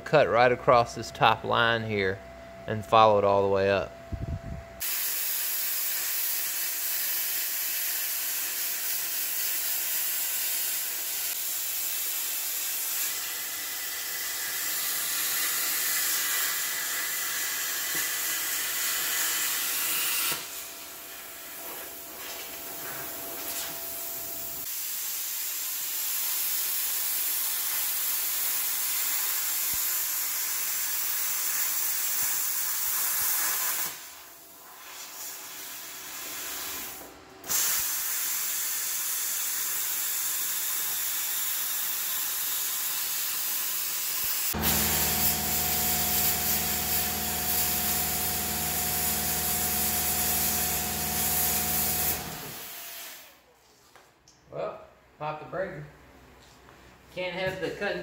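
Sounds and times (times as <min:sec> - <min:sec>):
pneumatic cut-off tool hissing: 0:04.8 - 0:53.4
air compressor humming: 0:11.3 - 0:24.7, 0:44.4 - 0:53.4.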